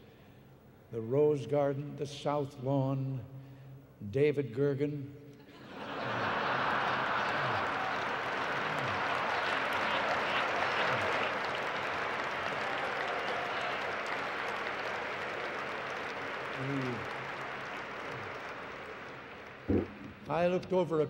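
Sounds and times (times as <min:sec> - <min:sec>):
audience laughing: 0:05.5 - 0:12.0
audience applauding: 0:05.8 - 0:20.4.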